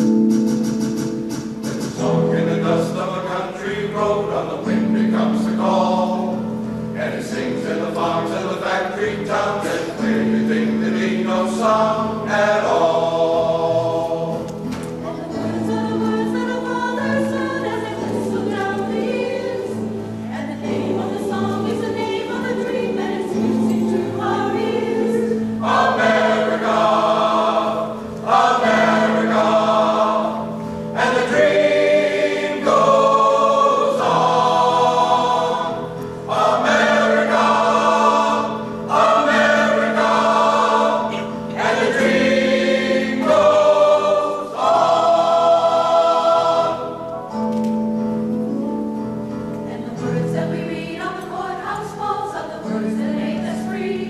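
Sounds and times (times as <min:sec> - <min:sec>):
mixed choir singing: 0:01.8 - 0:47.5, 0:49.7 - 0:54.0.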